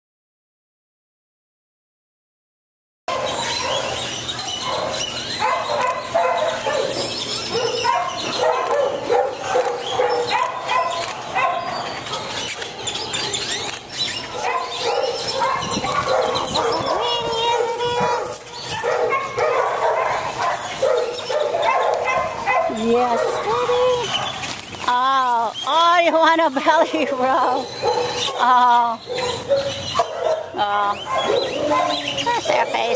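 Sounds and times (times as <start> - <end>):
dogs barking: 3.1 - 24.8, 26.6 - 32.9.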